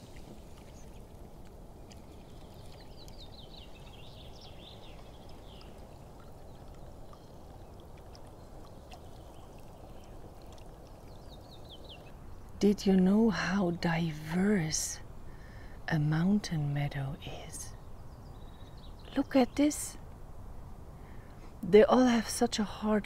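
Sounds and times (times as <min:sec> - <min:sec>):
small bird chirping: 0:01.8 - 0:12.4.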